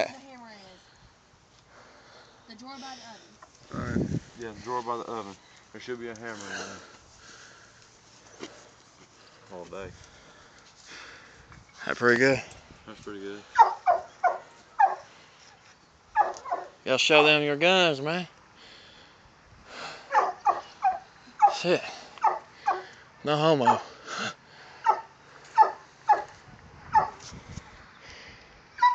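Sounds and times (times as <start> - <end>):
dog barking: 13.6 - 15.1, 16.2 - 16.8, 20.1 - 21.6, 22.2 - 22.9, 23.6 - 23.8, 24.8 - 26.3, 26.9 - 27.2.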